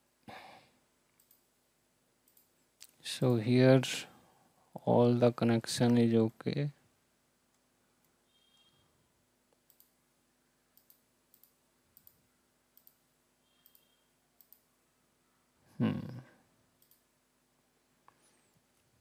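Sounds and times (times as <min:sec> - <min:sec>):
computer mouse clicks: 0:01.2 - 0:01.5, 0:02.2 - 0:03.0, 0:09.5 - 0:10.0, 0:10.7 - 0:14.7, 0:16.8 - 0:17.1.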